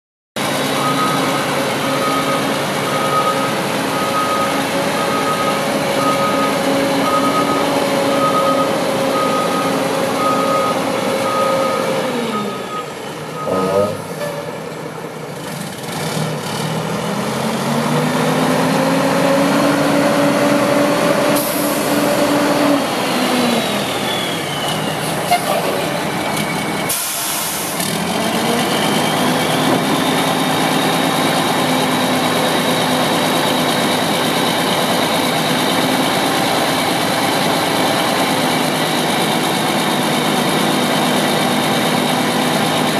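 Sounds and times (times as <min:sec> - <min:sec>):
truck diesel engine pulling away: 0:00.4 - 0:42.9.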